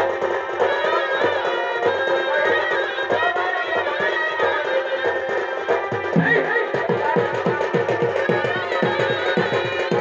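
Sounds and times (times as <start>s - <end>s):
double-headed drum fast strokes: 5.3s - 10.0s.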